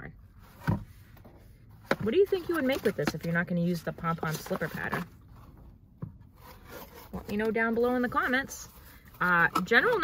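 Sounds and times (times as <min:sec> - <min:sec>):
cardboard rubbing and scraping: 0:01.8 - 0:05.6, 0:06.2 - 0:10.0.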